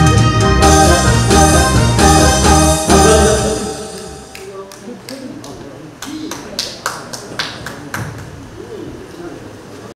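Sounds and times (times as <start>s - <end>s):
sparse handclaps: 4.3s - 8.3s
people talking quietly: 4.4s - 9.9s.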